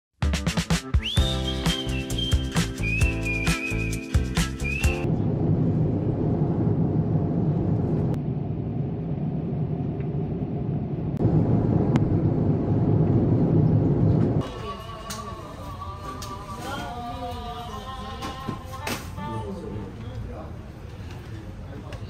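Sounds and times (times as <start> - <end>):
upbeat music with whistled melody: 0.4 - 5.1.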